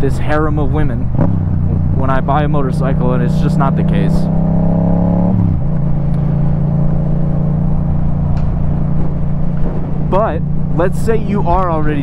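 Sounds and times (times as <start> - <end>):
wind rumble: 0.0 - 12.0
motorcycle engine running: 0.2 - 12.0.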